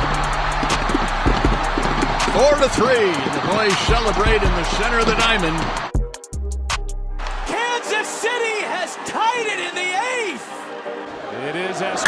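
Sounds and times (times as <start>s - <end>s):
music with voices over it: 0.0s - 6.1s, 7.3s - 12.0s.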